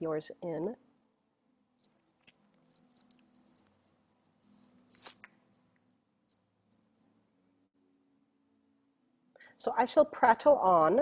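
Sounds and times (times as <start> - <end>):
faint scratchy rustles: 1.8 - 5.3.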